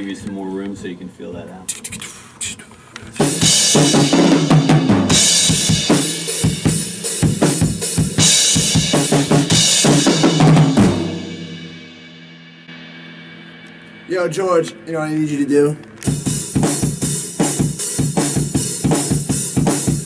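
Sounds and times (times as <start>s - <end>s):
snare drum: 3.2s - 11.4s, 16.1s - 20.0s
bass drum: 3.2s - 14.1s, 16.1s - 20.0s
crash cymbal hits: 10.7s - 15.2s.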